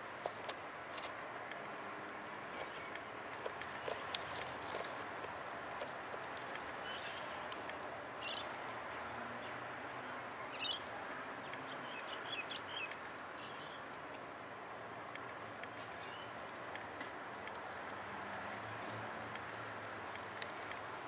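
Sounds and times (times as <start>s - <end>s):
small birds chirping: 6.7s - 7.6s.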